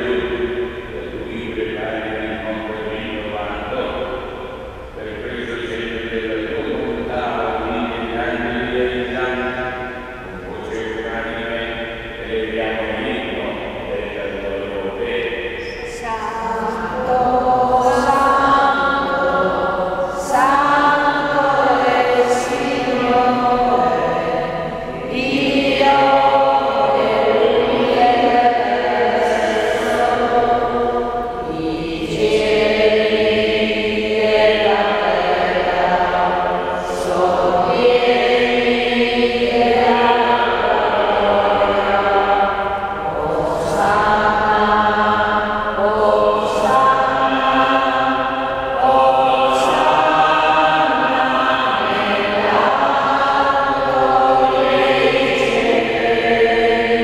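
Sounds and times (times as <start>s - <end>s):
slow chant in a church: 0.0s - 57.0s.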